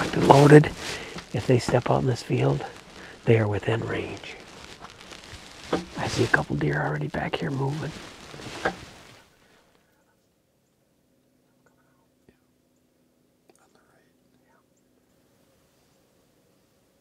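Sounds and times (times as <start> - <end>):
man whispering: 0.0 - 4.9, 5.9 - 8.4, 11.4 - 12.6, 13.5 - 14.7
faint rustling: 0.0 - 10.4, 13.5 - 17.0
faint sharp click: 13.5 - 14.4.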